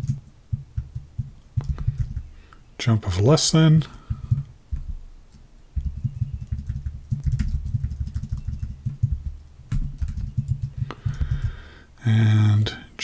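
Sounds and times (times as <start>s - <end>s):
typing on computer keyboard: 0.0s - 2.3s, 4.1s - 11.6s.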